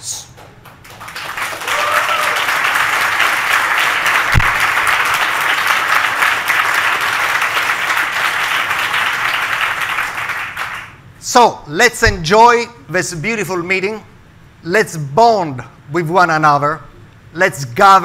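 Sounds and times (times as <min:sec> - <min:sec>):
audience applauding: 0:00.6 - 0:11.0.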